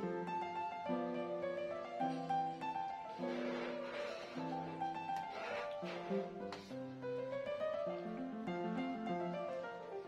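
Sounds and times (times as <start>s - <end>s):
slow keyboard melody: 0.0s - 10.0s.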